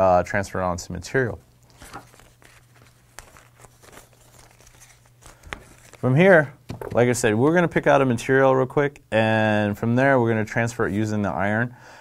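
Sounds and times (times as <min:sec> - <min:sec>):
paper rustling and crinkling: 0:01.6 - 0:07.2.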